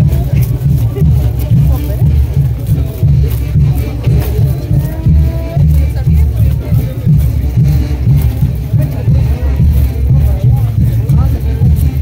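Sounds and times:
brass band playing: 0:00.0 - 0:12.0
crowd voices: 0:00.0 - 0:12.0
tuba and bass drum beat: 0:00.0 - 0:12.0.

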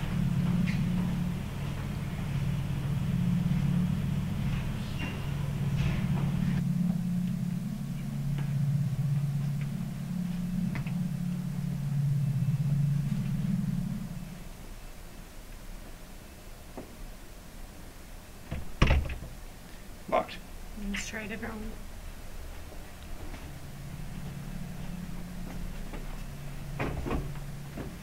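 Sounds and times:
low droning horror soundtrack rumble: 0:00.0 - 0:28.0.

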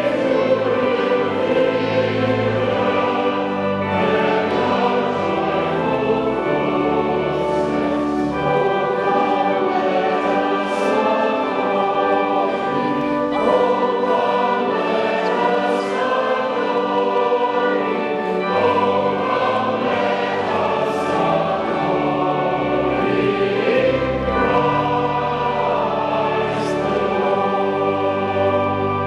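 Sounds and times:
church choir singing: 0:00.0 - 0:29.0
pipe organ: 0:00.0 - 0:29.0.

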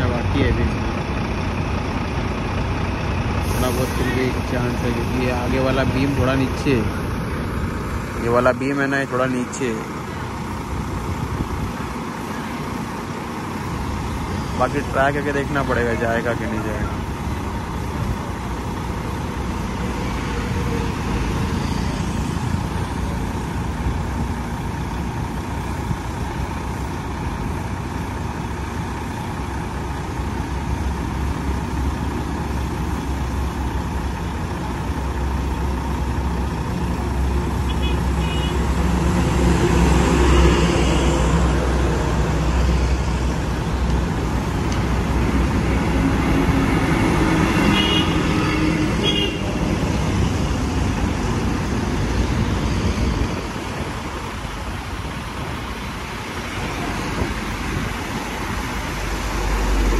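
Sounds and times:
heavy vehicle passing: 0:00.0 - 0:59.9
highway traffic: 0:00.0 - 0:59.9.

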